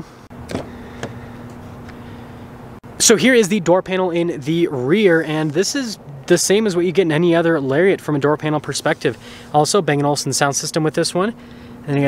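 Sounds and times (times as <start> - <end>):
steady low hum: 0.0 - 12.0
car door latch clicks: 0.4 - 1.2.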